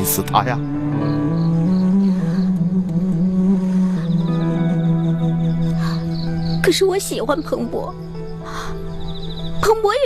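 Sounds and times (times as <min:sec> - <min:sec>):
drama score low held notes: 0:00.0 - 0:09.9.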